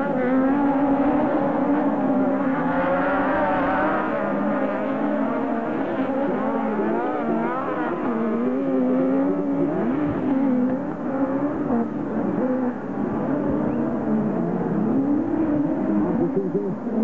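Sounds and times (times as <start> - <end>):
buggy engines revving: 0.0 - 17.0.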